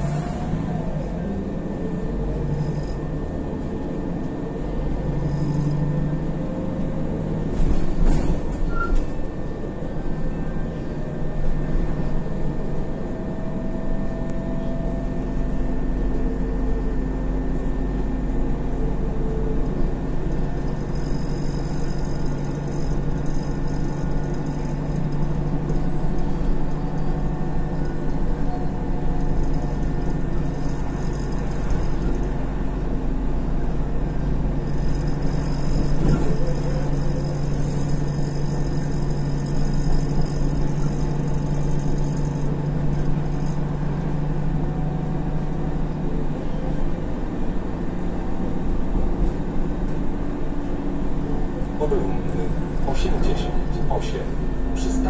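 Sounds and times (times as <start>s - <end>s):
bus engine drone: 0.0s - 55.0s
road noise: 0.0s - 55.0s.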